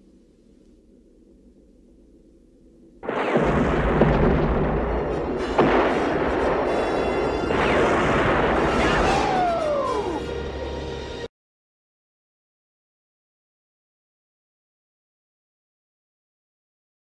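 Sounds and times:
large explosion rumbling: 3.0 - 10.2
orchestral score: 4.6 - 11.3.

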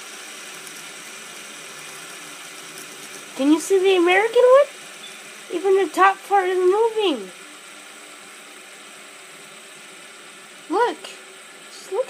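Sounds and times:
fidget spinners whirring: 0.0 - 12.0.

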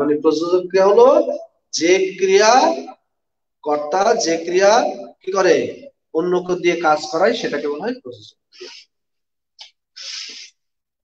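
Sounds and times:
man's sharp breath: 10.0 - 10.7.

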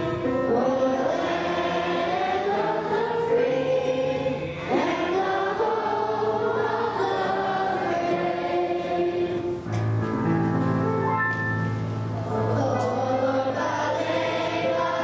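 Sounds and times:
group of voices singing: 0.0 - 9.7, 12.4 - 15.0.

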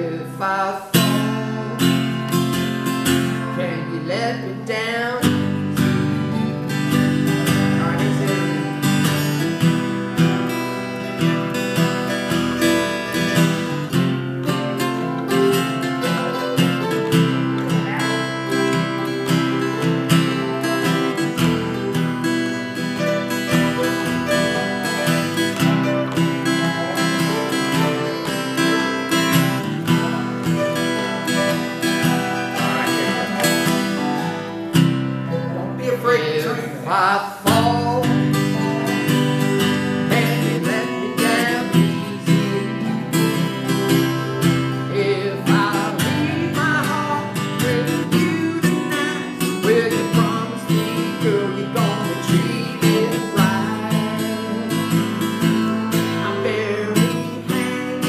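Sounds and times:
acoustic guitars strumming: 0.0 - 58.0.

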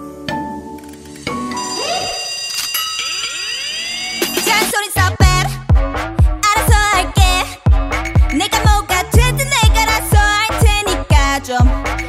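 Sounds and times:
electronic synth tones: 1.3 - 4.8.

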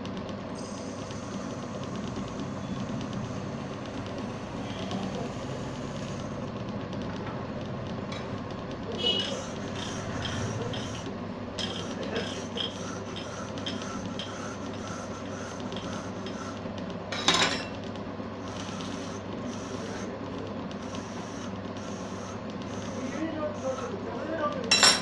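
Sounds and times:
small lathe running: 0.0 - 25.0.

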